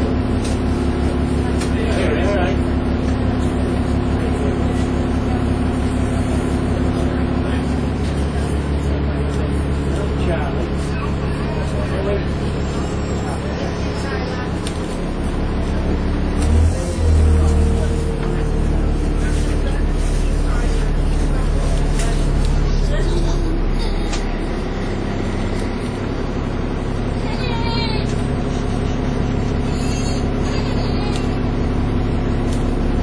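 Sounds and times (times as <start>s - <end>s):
bus diesel engine: 0.0s - 33.0s
engine whine: 0.0s - 33.0s.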